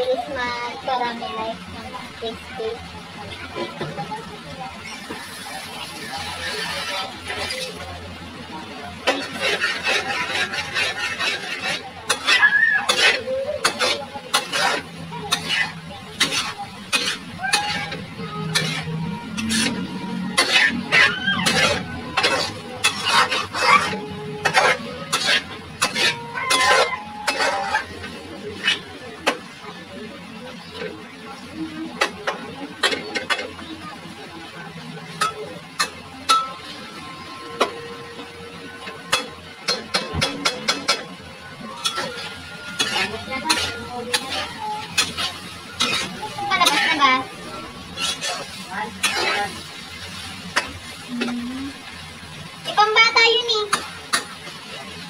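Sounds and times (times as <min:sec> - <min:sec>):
metal spatula scraping a wok: 0:04.8 - 0:29.7, 0:35.1 - 0:51.1.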